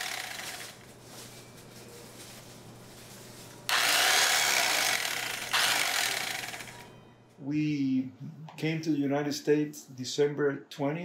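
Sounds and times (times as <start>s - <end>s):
electric carving knife buzzing: 0.0s - 0.8s, 3.7s - 6.9s.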